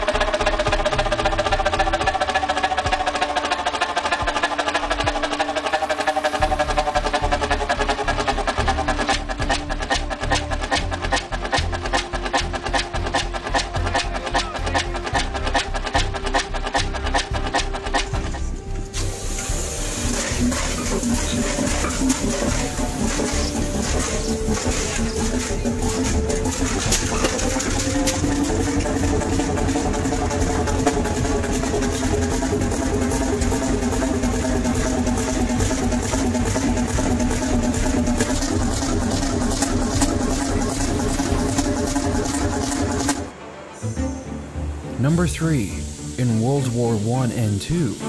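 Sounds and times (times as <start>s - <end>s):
diesel engine running: 0.0s - 43.7s
background music with sustained tones: 0.0s - 48.0s.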